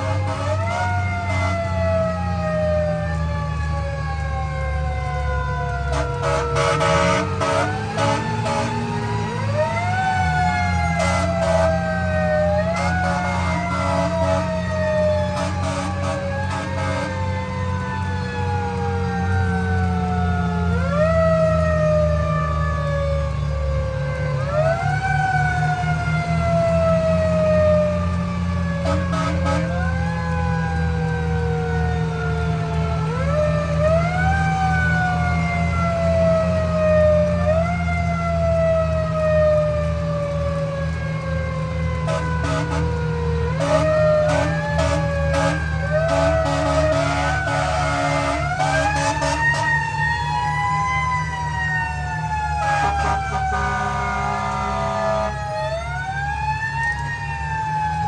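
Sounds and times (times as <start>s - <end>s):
short horn blasts: 0.0s - 1.7s, 5.9s - 8.8s, 11.0s - 11.8s, 12.8s - 14.6s, 15.3s - 17.2s, 28.8s - 29.9s, 42.1s - 43.0s, 43.6s - 49.8s, 52.6s - 55.4s
mechanical fire engine siren: 0.0s - 58.0s.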